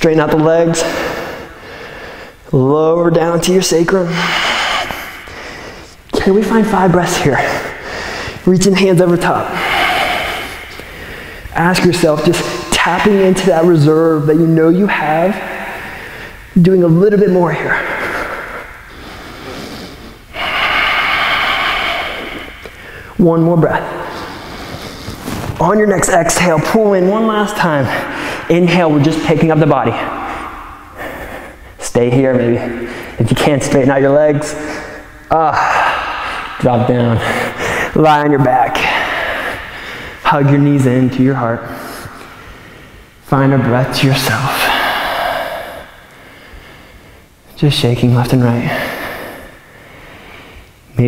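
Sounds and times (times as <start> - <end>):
man breathing hard: 0.8 - 2.5, 3.9 - 8.5, 9.2 - 11.6, 15.0 - 16.6, 17.6 - 23.2, 23.8 - 25.6, 27.6 - 29.3, 29.9 - 31.8, 32.6 - 33.2, 34.4 - 40.3, 41.7 - 43.2, 44.5 - 47.4, 48.6 - 50.9
man exhaling through mouth: 18.0 - 23.1.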